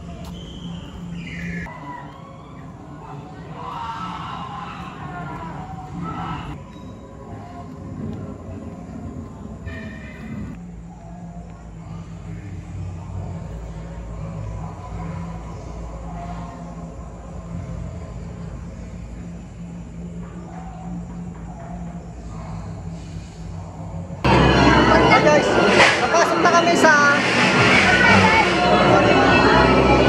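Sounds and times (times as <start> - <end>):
low drone: 0.0 - 30.0
harsh noisy burst: 24.3 - 30.0
shrill shaky voice-like tones: 24.3 - 30.0.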